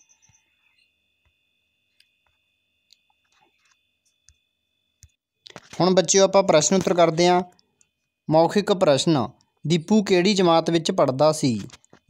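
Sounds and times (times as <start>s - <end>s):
faint steady high tone: 0.0s - 4.9s
person speaking: 5.5s - 7.6s, 8.3s - 11.8s.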